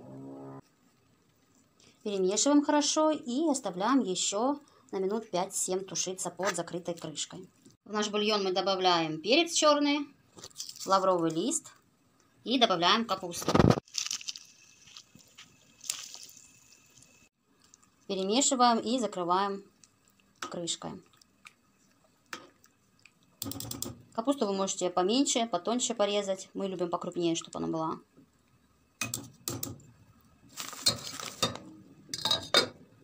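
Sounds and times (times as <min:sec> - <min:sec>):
metal spoon clinking against pot: 0:32.2 - 0:32.8.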